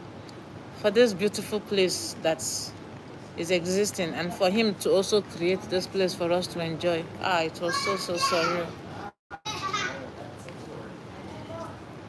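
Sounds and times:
children and people talking: 0:03.4 - 0:12.0.

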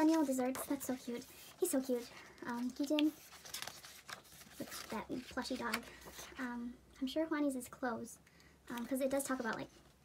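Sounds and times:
paper page rustling: 0:00.0 - 0:06.3.

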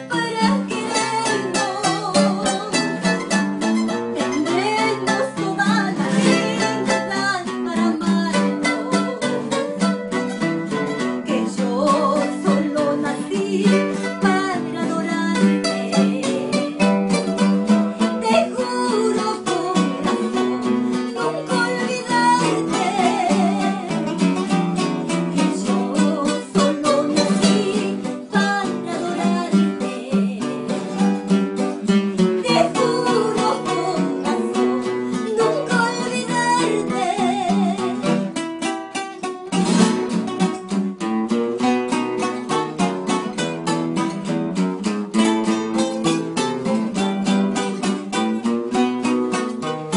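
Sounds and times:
woman singing with vibrato: 0:00.0 - 0:10.0, 0:11.0 - 0:38.4
acoustic guitars playing: 0:00.0 - 0:49.9.

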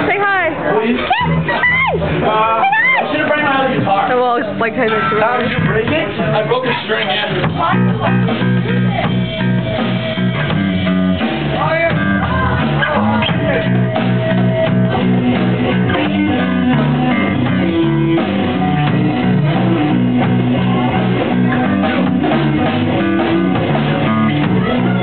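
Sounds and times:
rock band playing live: 0:00.0 - 0:25.0.

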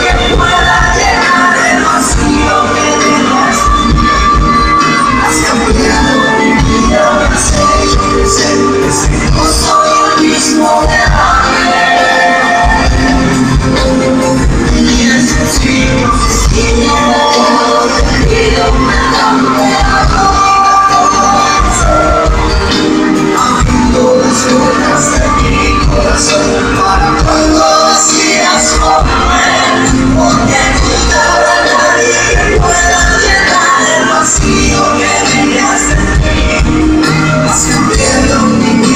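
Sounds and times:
live pop band playing: 0:00.0 - 0:38.9
man singing into a microphone: 0:00.0 - 0:38.9
steady drum beat: 0:00.0 - 0:38.9.

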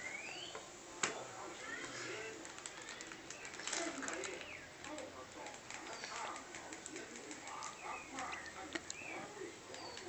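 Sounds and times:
bird chirps: 0:00.0 - 0:00.7.

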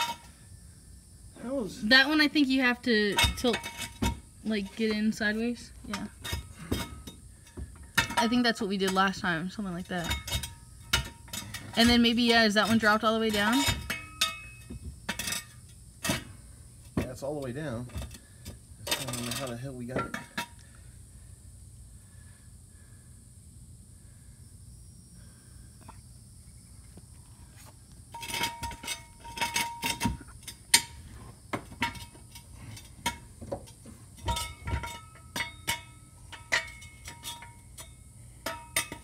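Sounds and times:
metal jack stand clinking: 0:09.9 - 0:16.3, 0:28.1 - 0:31.0, 0:31.8 - 0:39.0.

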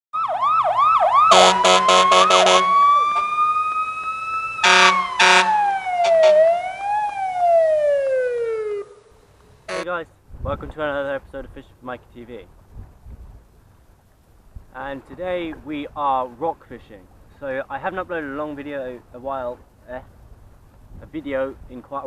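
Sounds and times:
siren whoops and wail: 0:00.2 - 0:09.1
short horn-like blasts: 0:01.3 - 0:02.8, 0:04.6 - 0:06.4, 0:09.7 - 0:10.0.

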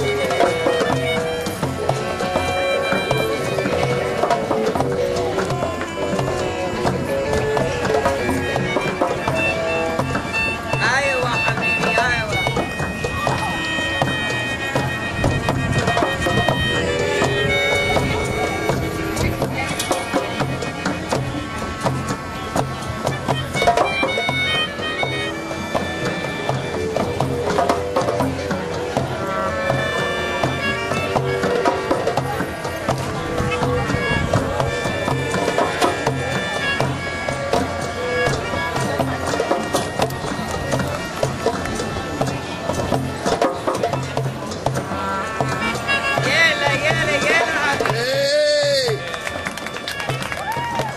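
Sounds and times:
hand drums playing rhythm: 0:00.0 - 0:50.9
wind instrument melody: 0:00.0 - 0:50.9.

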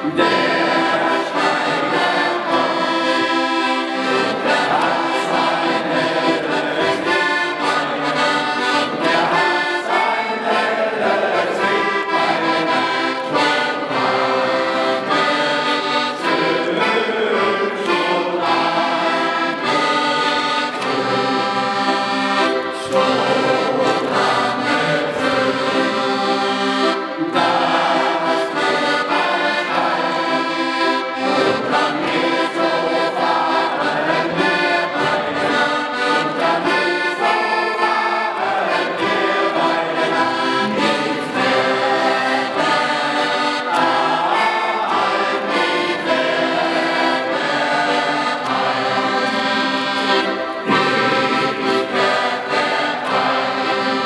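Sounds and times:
accordion playing a tune: 0:00.0 - 0:54.0.

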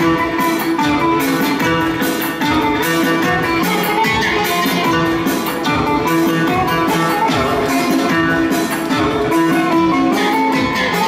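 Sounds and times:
folk dance music with plucked strings: 0:00.0 - 0:11.0.

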